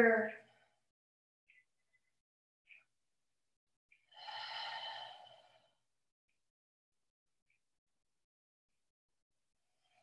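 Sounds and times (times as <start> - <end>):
person breathing out: 4.1 - 5.7.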